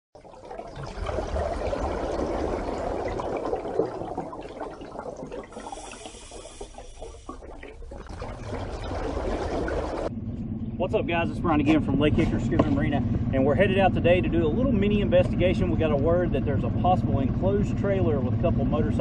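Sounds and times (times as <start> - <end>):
rushing gurgling water: 0.2 - 10.1.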